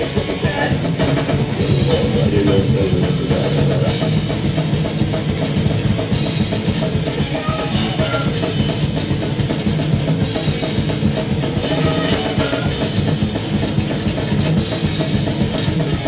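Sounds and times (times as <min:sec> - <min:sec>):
bass guitar: 0:00.0 - 0:16.0
distorted electric guitars: 0:00.0 - 0:16.0
fast dense drumming: 0:00.0 - 0:16.0.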